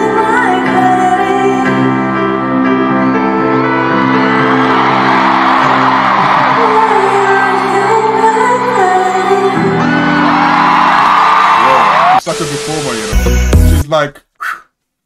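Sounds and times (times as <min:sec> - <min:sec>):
crowd cheering and screaming: 0:03.4 - 0:12.2.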